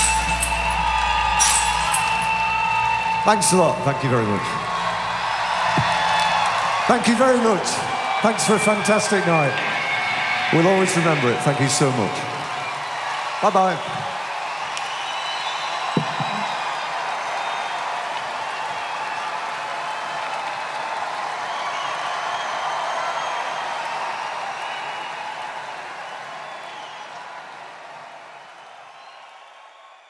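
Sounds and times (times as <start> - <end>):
whistles: 0.0 - 3.9, 13.8 - 17.9, 21.4 - 25.4, 26.1 - 27.3, 28.5 - 30.0
audience applauding and cheering: 0.0 - 30.0
thump: 5.7 - 6.0, 16.0 - 16.5.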